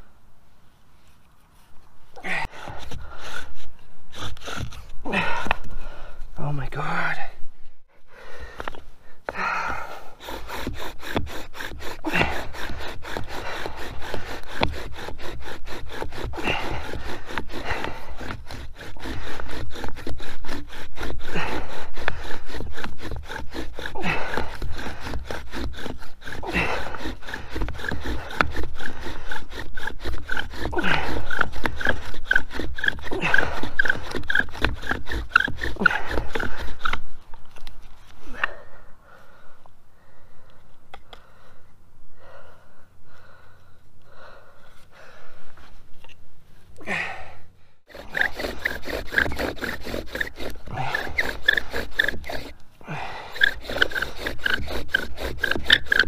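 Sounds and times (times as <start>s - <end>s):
bow drill spindle rubbing wood: 2.5s - 5.7s, 10.1s - 38.1s, 47.9s - 56.0s.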